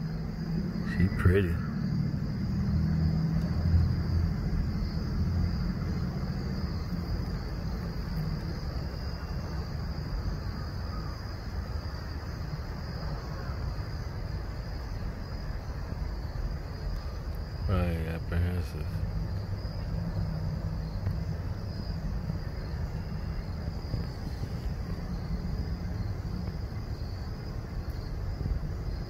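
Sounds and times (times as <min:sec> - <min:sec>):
high insect drone: 0:00.0 - 0:29.0.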